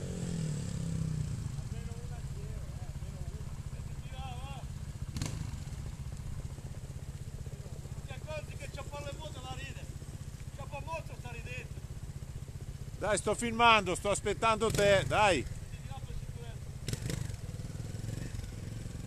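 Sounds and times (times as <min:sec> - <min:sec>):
motorcycle engine idling: 0:00.0 - 0:19.0.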